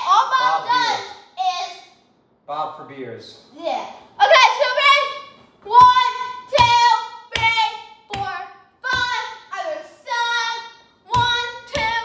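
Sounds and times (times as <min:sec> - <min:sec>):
boy shouting: 0:00.0 - 0:01.9, 0:03.6 - 0:12.0.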